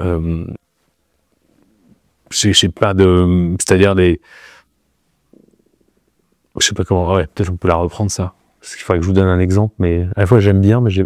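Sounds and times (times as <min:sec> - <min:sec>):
man speaking: 0:00.0 - 0:00.6, 0:02.3 - 0:04.3, 0:06.6 - 0:11.0
soft breath: 0:04.2 - 0:04.8.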